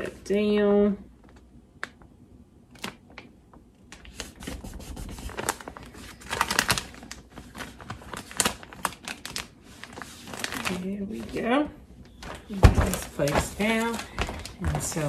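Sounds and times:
tape scratching and crackling on fabric: 3.9 - 11.4.

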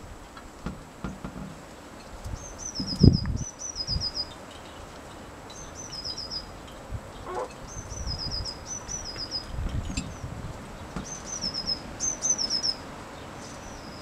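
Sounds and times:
songbird singing: 1.5 - 14.0.

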